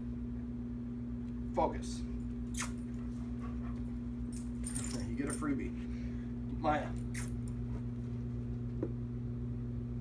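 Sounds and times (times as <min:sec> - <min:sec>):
steady low hum: 0:00.0 - 0:10.0
dog panting softly: 0:03.0 - 0:04.1.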